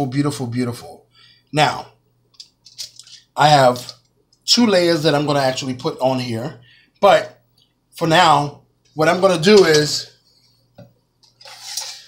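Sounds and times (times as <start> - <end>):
utensils scraping: 11.2 - 12.0.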